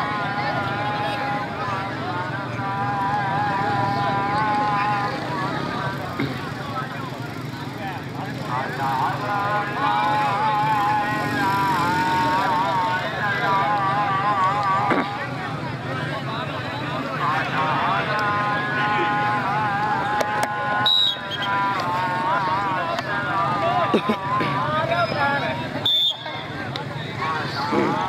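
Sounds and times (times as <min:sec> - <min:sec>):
person calling sing-song: 0:00.0 - 0:06.4, 0:08.2 - 0:28.0.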